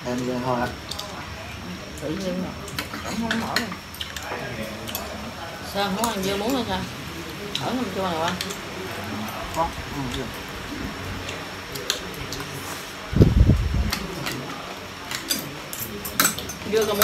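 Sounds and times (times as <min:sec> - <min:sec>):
low voices: 0:00.0 - 0:17.0
cutlery clinking on ceramic bowls: 0:14.2 - 0:17.0.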